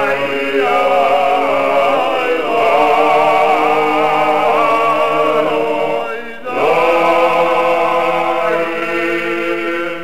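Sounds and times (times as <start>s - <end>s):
men's choir singing unaccompanied: 0.0s - 10.0s.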